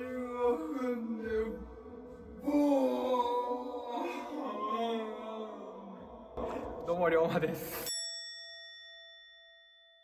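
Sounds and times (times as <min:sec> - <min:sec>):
bell-like ding: 0:07.8 - 0:10.0.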